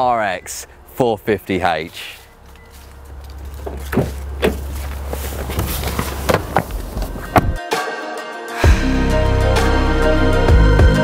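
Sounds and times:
car door handling knocks: 3.6s - 4.8s, 5.4s - 7.6s
music: 7.0s - 11.0s.

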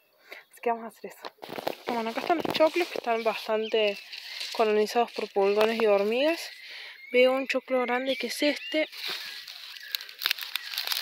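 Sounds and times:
corn husk rustling and crackling: 1.4s - 6.6s, 8.6s - 11.0s.

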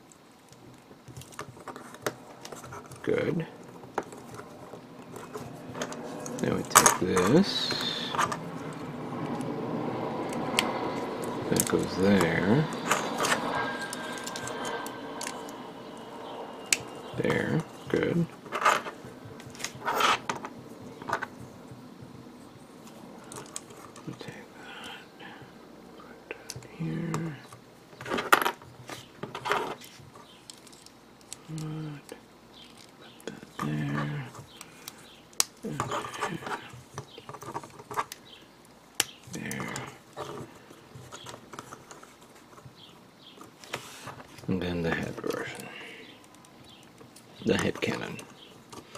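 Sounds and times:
rustling handling noise: 0.0s - 9.6s, 10.2s - 25.0s, 26.3s - 48.9s.

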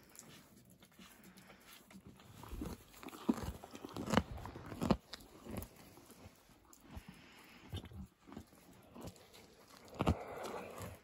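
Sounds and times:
cow chewing hay: 0.0s - 11.0s.

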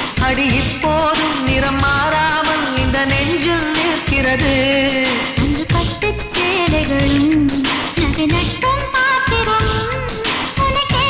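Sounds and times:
instrumental backing: 0.0s - 11.0s
steady drum beat: 0.0s - 11.0s.

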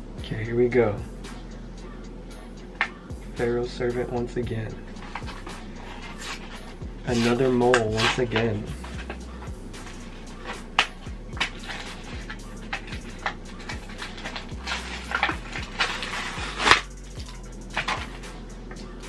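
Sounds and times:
low background music: 0.0s - 19.0s
plastic packaging crinkling: 10.4s - 18.2s.

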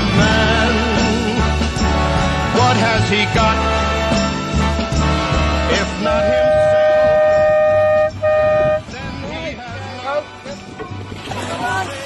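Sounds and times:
horn blasts: 5.0s - 9.2s.

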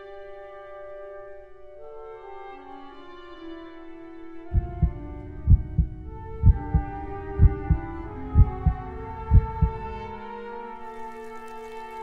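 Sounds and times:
held music chords: 4.5s - 10.8s
heartbeat double thump: 4.6s - 9.9s.

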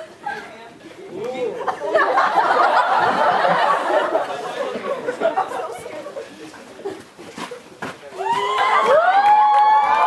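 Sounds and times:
children shouting and cheering: 8.2s - 10.0s.

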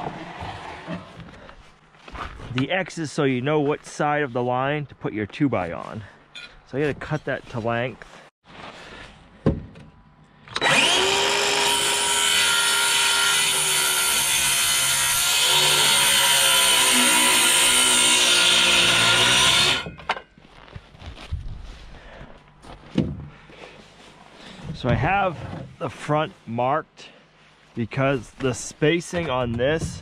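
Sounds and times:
circular saw cutting wood: 10.5s - 19.9s.

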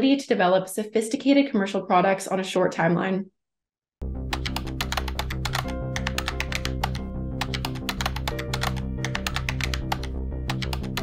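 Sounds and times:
keyboard typing clicks: 4.4s - 11.0s.

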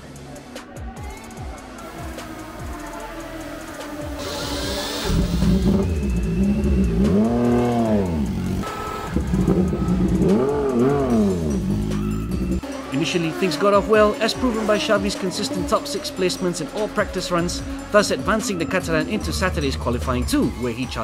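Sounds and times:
motorcycle engine revving: 1.0s - 21.0s.

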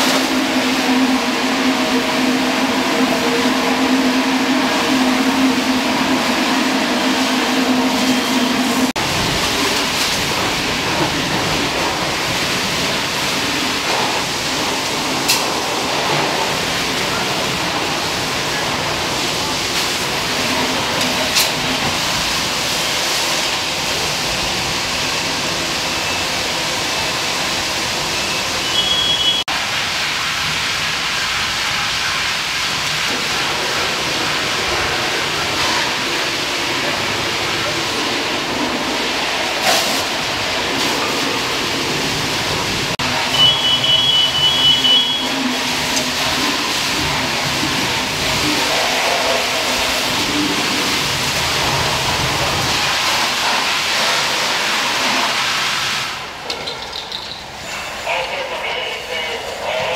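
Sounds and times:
hose water hissing into steam: 0.0s - 59.9s.

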